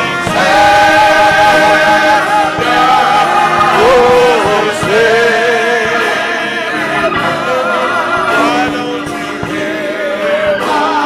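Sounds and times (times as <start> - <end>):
choir singing a hymn: 0.0 - 11.0
instrumental accompaniment: 0.0 - 11.0.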